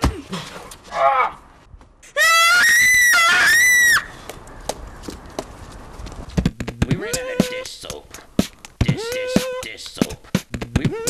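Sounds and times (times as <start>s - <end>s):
high-pitched human scream: 2.2s - 4.1s.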